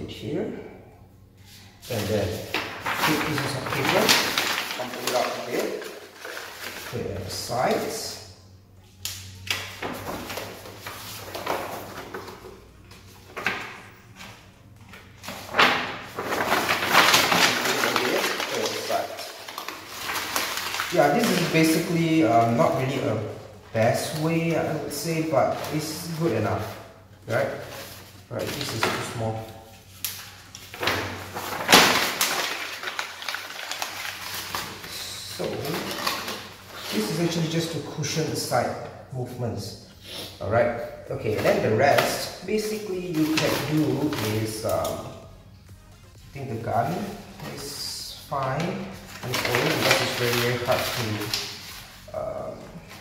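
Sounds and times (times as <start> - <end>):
paper rustling and crumpling: 1.6 - 8.1, 9.7 - 38.2, 41.3 - 45.2, 46.6 - 53.0.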